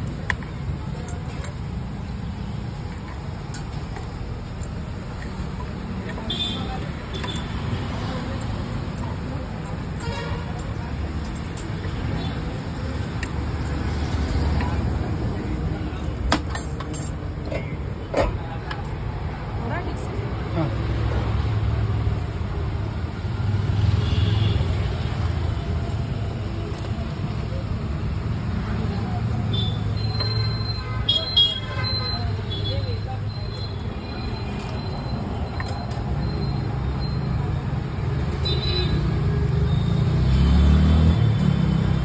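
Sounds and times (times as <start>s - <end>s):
traffic rumble: 0.0s - 42.0s.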